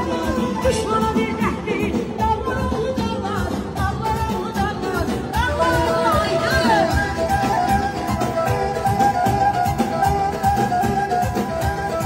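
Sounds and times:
woman singing into microphone: 0.0s - 9.5s
electronic keyboard: 0.0s - 12.0s.

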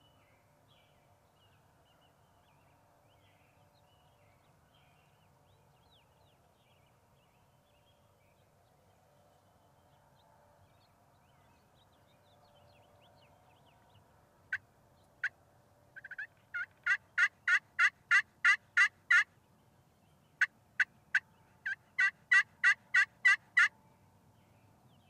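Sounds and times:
wild turkey yelps: 16.0s - 19.3s, 21.1s - 23.7s.

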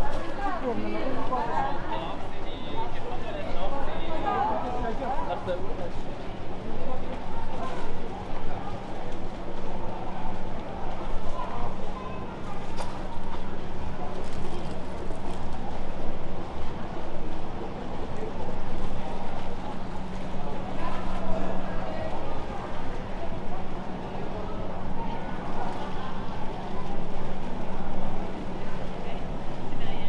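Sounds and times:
chatter of passers-by: 0.0s - 30.0s
street bustle: 0.0s - 30.0s.

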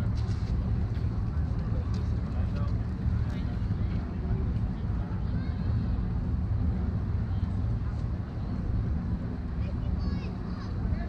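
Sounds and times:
distant indistinct voices: 0.0s - 11.0s
steady low rumble: 0.0s - 11.0s.

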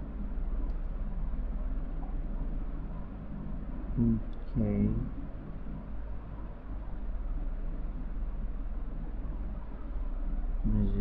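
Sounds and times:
low hum: 0.0s - 11.0s
steady microphone hiss: 0.0s - 11.0s.

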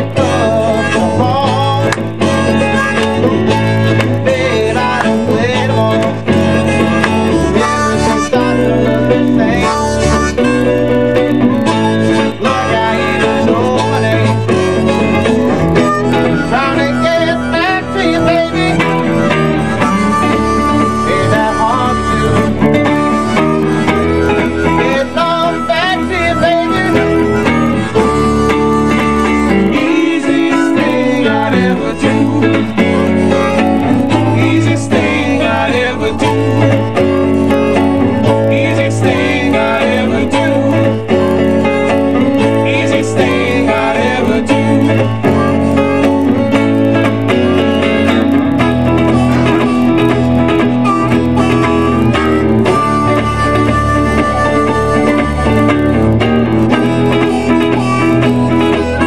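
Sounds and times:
bass line: 0.0s - 59.0s
electric guitar: 0.0s - 59.0s
harmonica: 0.0s - 59.0s.

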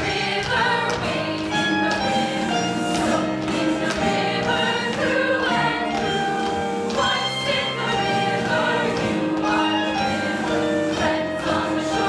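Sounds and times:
musical accompaniment: 0.0s - 12.0s.

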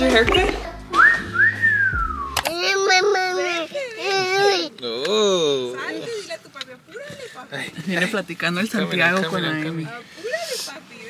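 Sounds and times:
voices: 0.0s - 11.0s
person wolf whistling: 1.0s - 2.4s.

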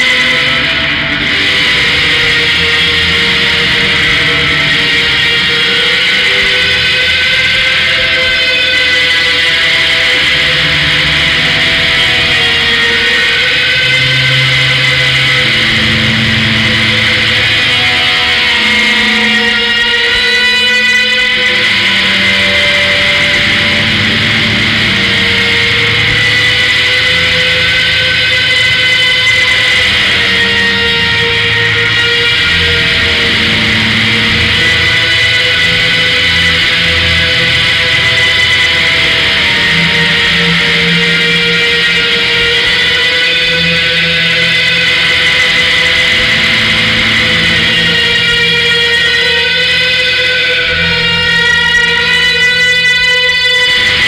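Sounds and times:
distorted noise rock: 0.0s - 52.1s.

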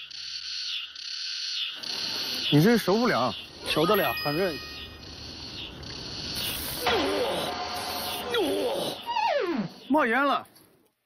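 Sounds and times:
cicadas buzzing: 0.0s - 10.1s.

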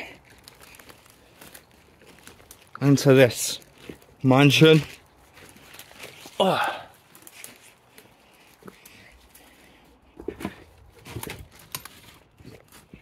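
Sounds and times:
footsteps crunching on rubble: 0.1s - 6.4s
person grunting: 6.4s - 7.0s.

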